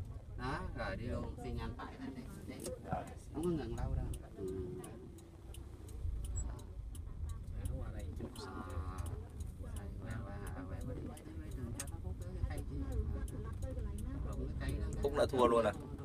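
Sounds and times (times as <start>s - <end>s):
car engine and road rumble: 0.0s - 16.0s
turn signal ticking: 0.0s - 16.0s.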